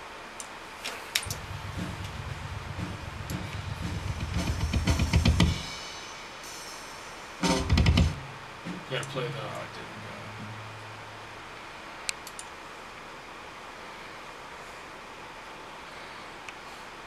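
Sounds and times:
light drum ticks: 1.2s - 5.6s
fast low drum roll: 1.3s - 6.5s, 7.4s - 11.0s
loud drum hit: 1.3s - 6.8s, 7.4s - 8.9s.

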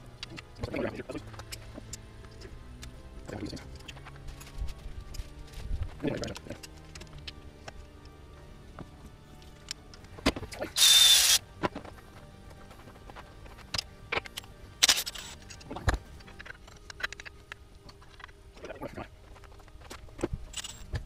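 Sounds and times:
cordless power tool whining: 10.8s - 11.4s.

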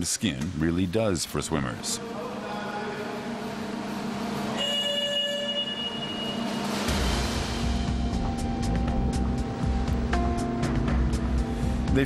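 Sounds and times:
machine hum: 1.0s - 11.9s.

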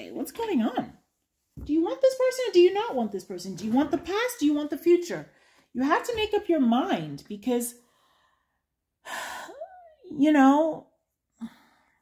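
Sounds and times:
woman sighing: 9.0s - 10.0s.

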